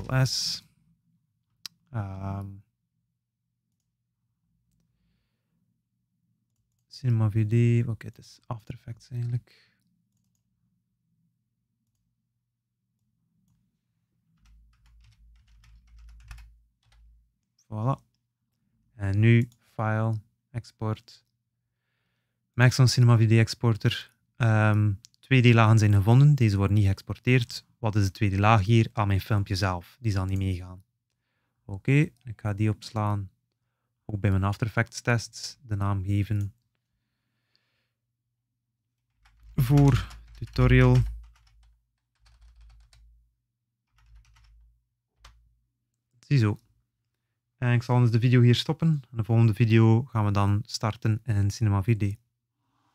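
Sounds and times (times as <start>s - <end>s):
faint computer keyboard typing: 6.4s - 6.9s, 9.1s - 10.5s, 14.2s - 18.2s, 30.2s - 31.2s, 39.1s - 43.2s, 43.9s - 45.5s
faint keyboard key presses: 39.2s - 43.1s.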